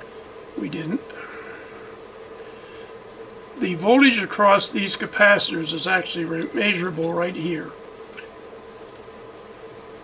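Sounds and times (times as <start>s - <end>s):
transformer electrical hum: 0.0s - 10.0s.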